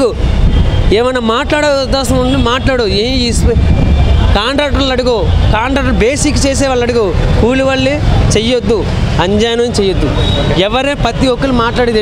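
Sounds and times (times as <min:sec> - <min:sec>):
low rumble of street traffic: 0:00.0 - 0:12.0
man speaking: 0:00.9 - 0:12.0.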